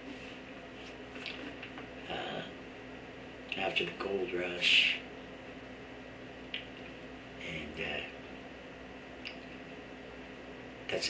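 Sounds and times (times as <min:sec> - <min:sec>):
low steady hum: 0:00.0 - 0:11.0
lip smack: 0:06.5 - 0:06.8.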